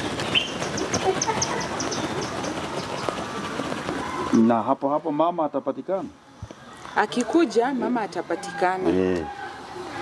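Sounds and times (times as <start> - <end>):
bird chirping rapidly: 0.0 - 3.4
outdoor background noise: 0.0 - 10.0.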